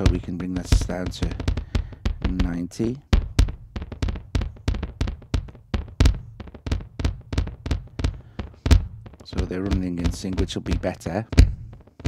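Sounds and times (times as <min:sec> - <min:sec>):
electronic kick drum echoing: 0:00.0 - 0:12.0.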